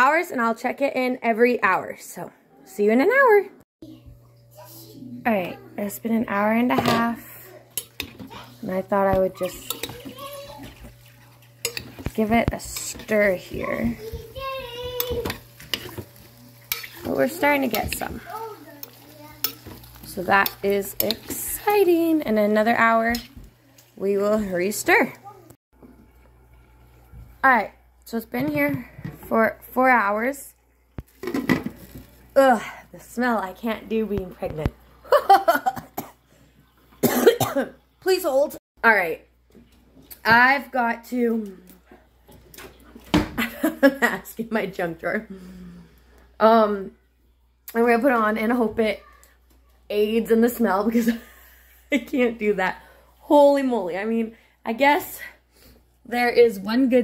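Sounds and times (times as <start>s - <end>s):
kitchenware clinking: 6.6s - 23.5s
woman coughing: 35.7s - 36.2s, 37.0s - 37.8s.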